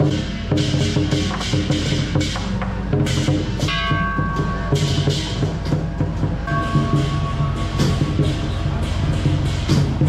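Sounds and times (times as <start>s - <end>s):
big drum beating quickly: 0.0s - 10.0s
cymbals crashing: 0.0s - 10.0s
ringing metallic tone: 3.7s - 10.0s.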